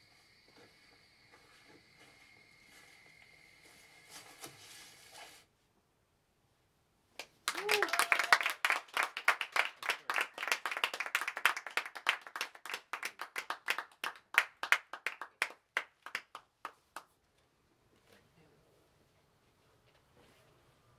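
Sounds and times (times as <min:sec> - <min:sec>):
audience applauding: 0:07.2 - 0:17.1.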